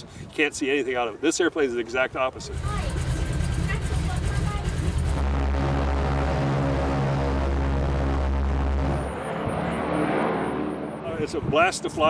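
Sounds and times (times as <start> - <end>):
propeller plane engine drone: 2.4 - 12.0.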